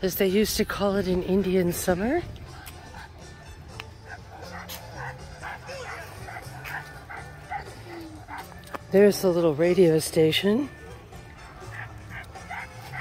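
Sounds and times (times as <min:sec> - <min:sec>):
dog whimpering: 0:04.0 - 0:08.6, 0:11.6 - 0:13.0.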